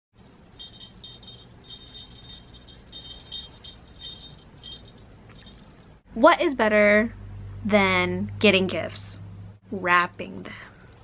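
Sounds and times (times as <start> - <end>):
small bell jingling: 0.2 - 6.0.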